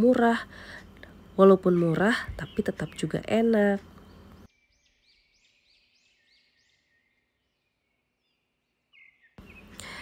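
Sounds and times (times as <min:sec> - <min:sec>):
faint bird chirping: 0:00.0 - 0:10.0.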